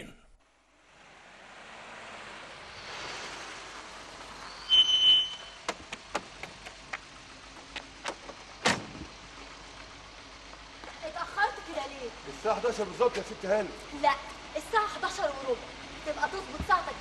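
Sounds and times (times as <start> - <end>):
car engine and tyres: 0.4 - 17.0
high squeal: 4.4 - 5.7.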